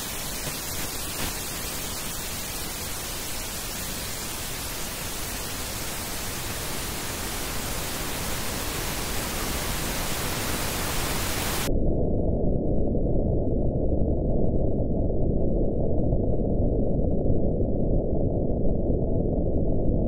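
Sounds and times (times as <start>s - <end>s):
pink noise hiss: 0.0s - 11.7s.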